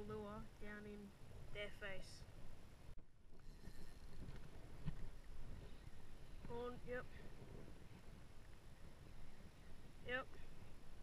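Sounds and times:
wind rumbling on microphone: 0:00.0 - 0:11.0.

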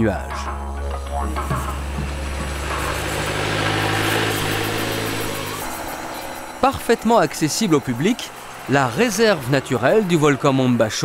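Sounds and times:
truck engine running: 0:00.2 - 0:11.0
tyres on cobblestones: 0:00.7 - 0:11.0.

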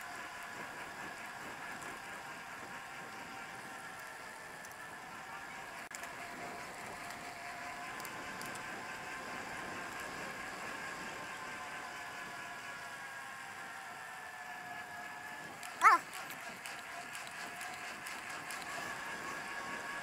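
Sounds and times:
bicycle rolling on pavement: 0:00.0 - 0:20.0.

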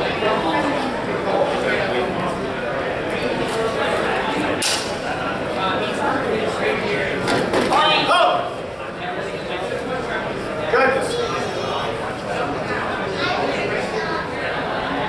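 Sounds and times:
voices chattering in a hall: 0:00.0 - 0:15.0.

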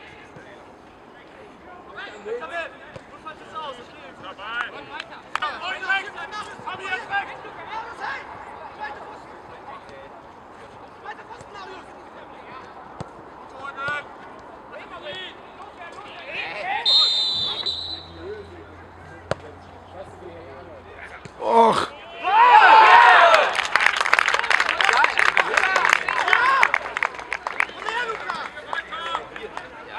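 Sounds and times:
players shouting: 0:14.8 - 0:18.6, 0:20.9 - 0:23.8
referee's whistle blast: 0:16.8 - 0:18.2
ball kicks: 0:19.2 - 0:19.5.

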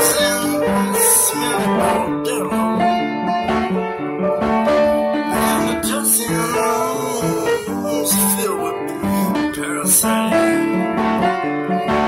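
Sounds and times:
piano chords: 0:00.0 - 0:12.0.

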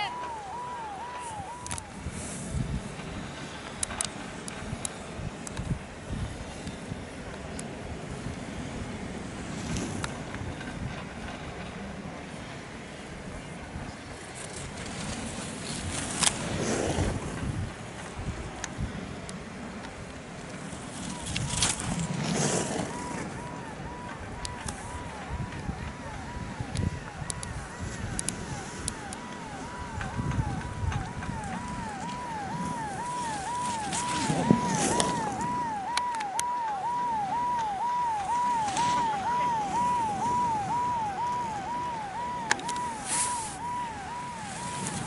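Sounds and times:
electronic warbling alarm: 0:00.0 - 0:01.9, 0:22.9 - 0:45.0
wind rushing on microphone: 0:00.0 - 0:12.2, 0:13.0 - 0:45.0
skis scraping over snow: 0:00.1 - 0:12.8, 0:13.8 - 0:19.2, 0:20.1 - 0:25.2, 0:27.6 - 0:35.8, 0:42.8 - 0:45.0
brief hiss: 0:43.0 - 0:43.6.

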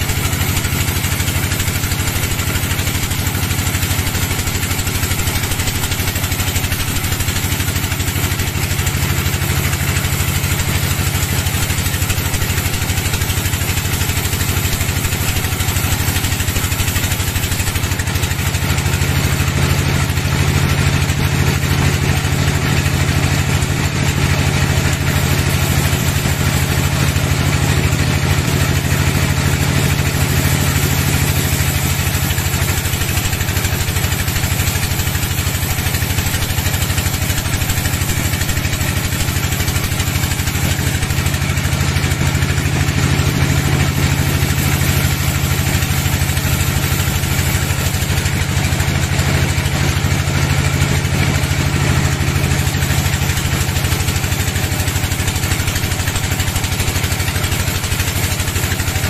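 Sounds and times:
bandsaw cutting log: 0:00.0 - 0:20.6, 0:24.7 - 0:50.2, 0:52.4 - 0:59.0
engine drone: 0:00.0 - 0:59.0.

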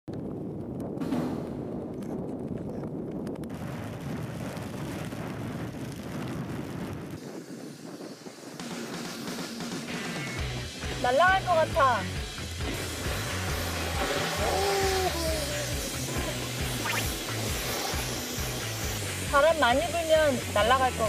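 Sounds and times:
strong wind on microphone: 0:00.1 - 0:09.4.

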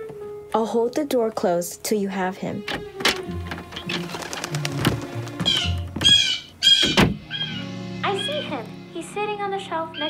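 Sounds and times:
background music: 0:00.0 - 0:10.0
blue jay squawking: 0:05.4 - 0:08.6.

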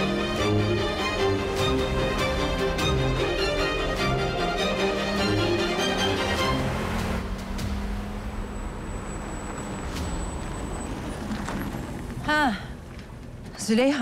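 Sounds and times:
car engine driving off: 0:00.0 - 0:13.5
dramatic film score: 0:00.0 - 0:14.0.

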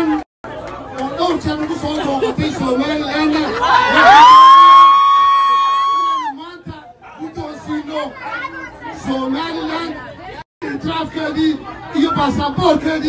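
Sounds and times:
crowd chatter: 0:00.0 - 0:04.3, 0:05.4 - 0:13.0.

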